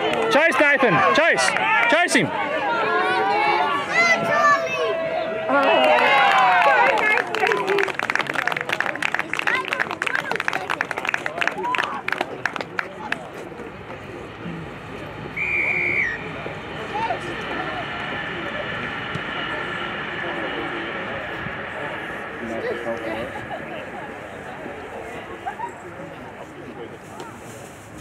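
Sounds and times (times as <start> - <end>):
spectators clapping: 0.0 - 2.4, 5.5 - 14.0
referee's whistle blast: 15.4 - 16.3.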